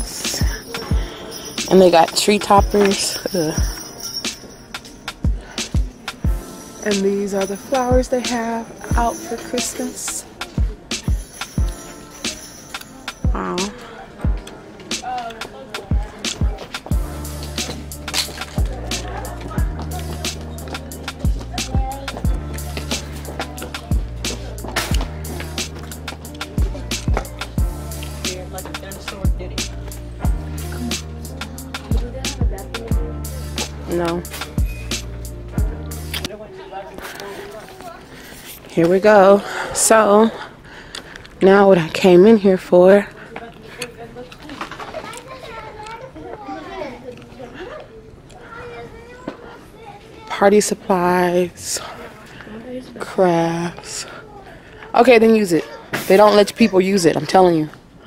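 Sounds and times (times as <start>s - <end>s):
crisp hi-hats ticking: 0.0s - 36.3s
faint background voices: 0.0s - 58.0s
deep kick drums: 2.6s - 2.8s, 18.6s - 20.3s, 21.2s - 25.5s, 26.6s - 27.8s, 30.2s - 30.6s, 31.8s - 33.2s, 35.5s - 35.9s.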